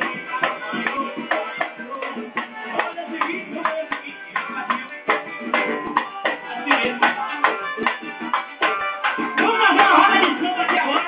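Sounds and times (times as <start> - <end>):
samba drums and hand percussion: 0.0 - 11.0.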